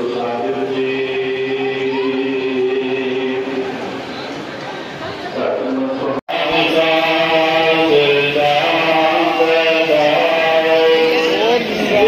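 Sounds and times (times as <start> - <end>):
devotional chant-like singing: 0.0 - 4.0, 5.3 - 12.0.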